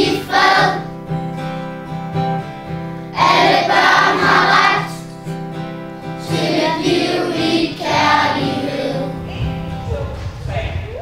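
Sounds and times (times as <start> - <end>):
children singing: 0.0 - 0.9, 3.2 - 5.2, 6.2 - 9.7
instrumental accompaniment: 0.0 - 10.9.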